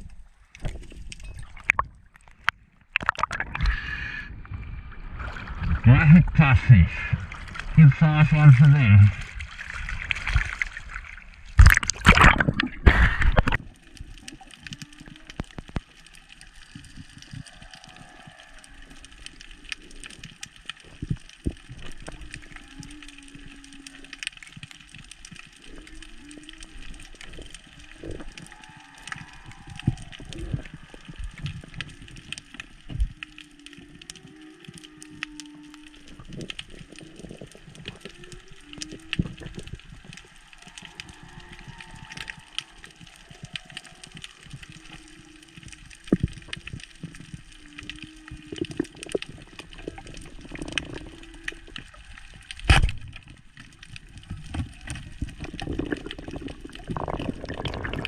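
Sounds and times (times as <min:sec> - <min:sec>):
underwater clicks and crackles: 0:00.0 - 0:58.0.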